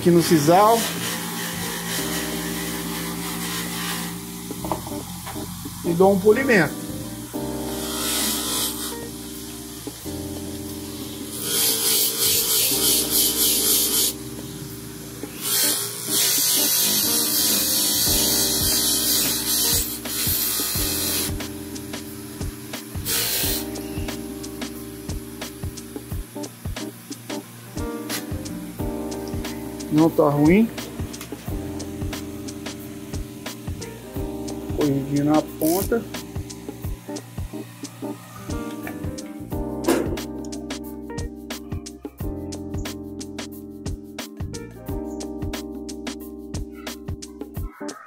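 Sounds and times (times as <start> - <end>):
bench grinder motor humming: 0.0 - 9.0, 11.0 - 21.4
metal tool on polishing wheel hiss: 0.1 - 5.2, 7.8 - 9.9, 11.0 - 14.7, 15.3 - 24.2.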